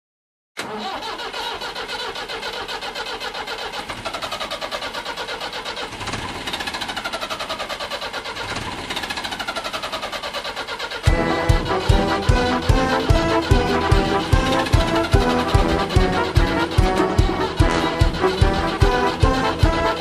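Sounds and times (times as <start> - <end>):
tractor engine revving: 0.6 - 20.0
rock band playing: 11.1 - 20.0.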